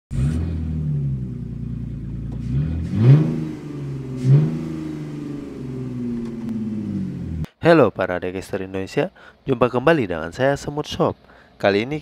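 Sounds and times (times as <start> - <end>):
car engine idling and revving: 0.1 - 7.6.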